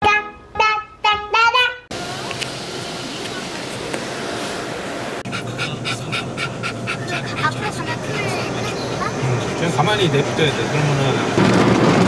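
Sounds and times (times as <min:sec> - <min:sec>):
low hum inside car: 0:01.9 - 0:09.1
dog panting fast: 0:05.2 - 0:09.2.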